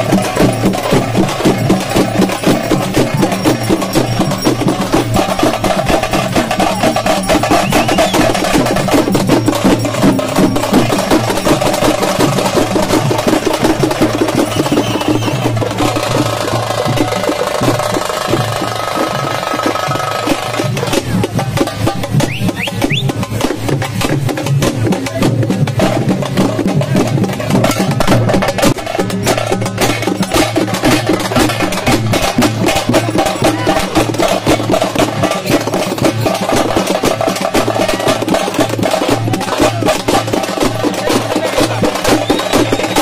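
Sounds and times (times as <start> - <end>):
fast drumming: 0.0 - 43.0.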